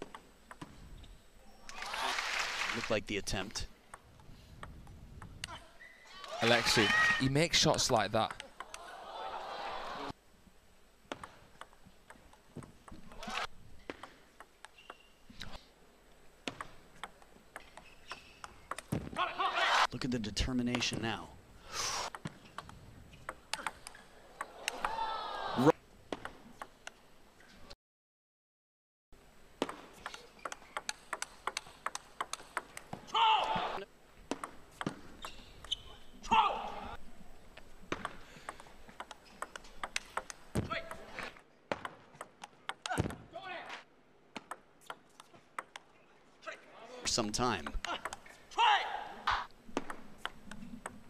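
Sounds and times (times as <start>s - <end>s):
loud shouts: 6.1s - 7.3s, 8.8s - 10.1s, 19.2s - 19.9s, 24.6s - 25.7s, 33.1s - 33.8s, 36.2s - 37.0s, 48.5s - 49.2s
table tennis ball clicking: 11.1s - 13.0s, 16.5s - 18.9s, 29.6s - 32.9s, 37.9s - 41.0s, 44.4s - 45.9s, 47.6s - 48.2s.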